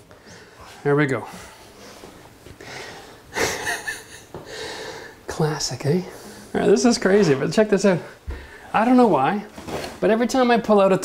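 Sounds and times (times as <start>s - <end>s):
man laughing breathily: 2.9s - 5.0s.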